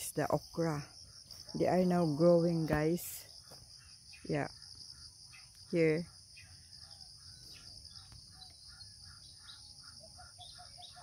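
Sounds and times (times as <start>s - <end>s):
insects and crickets chirring: 0.0s - 11.0s
bird chirps: 0.1s - 11.0s.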